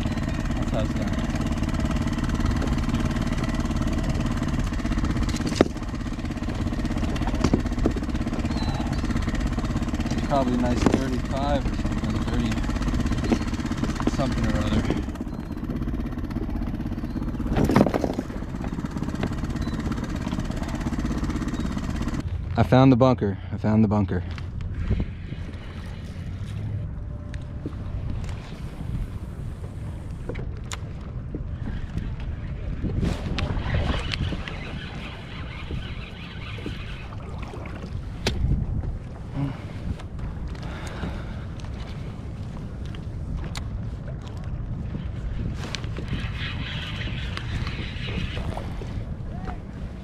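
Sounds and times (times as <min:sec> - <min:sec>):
water lapping at hull: 0:00.0 - 0:22.5, 0:23.7 - 0:50.0
wind buffeting microphone: 0:00.0 - 0:22.6, 0:23.8 - 0:50.0.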